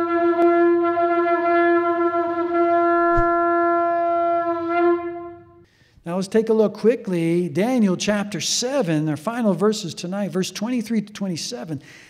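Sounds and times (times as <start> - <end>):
shofar long blast: 0.0 - 5.7.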